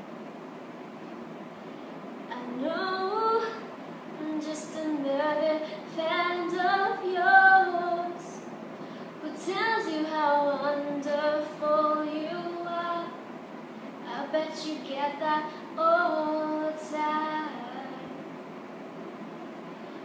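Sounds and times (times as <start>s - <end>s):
woman singing unaccompanied: 2.3s - 8.5s, 9.2s - 13.3s, 14.0s - 18.3s.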